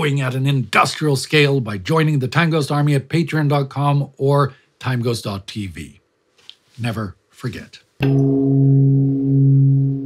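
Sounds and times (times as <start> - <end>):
deep bell-like tone: 8.0 - 10.0.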